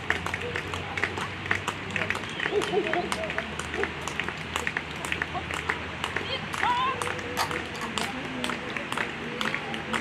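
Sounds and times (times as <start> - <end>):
spectators clapping: 0.0 - 10.0.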